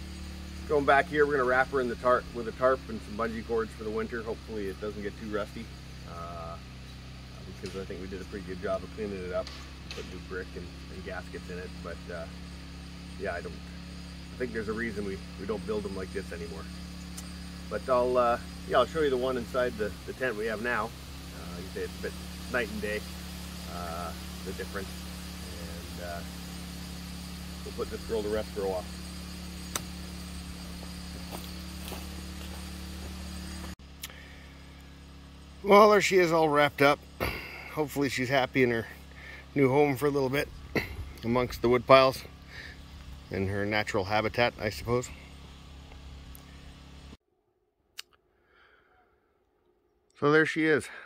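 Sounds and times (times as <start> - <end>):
low hum: 0.0 - 47.2
outdoor background noise: 0.0 - 47.2
tractor engine idling: 0.0 - 47.2
sharp click: 29.7 - 29.9.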